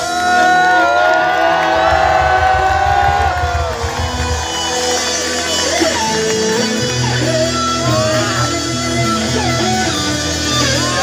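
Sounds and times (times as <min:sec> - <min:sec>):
crowd cheering and whooping: 0:00.0 - 0:08.6
live band playing loudly: 0:00.0 - 0:11.0.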